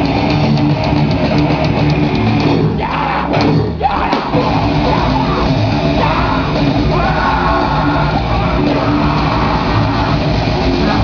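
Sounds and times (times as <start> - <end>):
grindcore band playing live: 0.0 - 11.0
shouted vocals: 2.6 - 11.0.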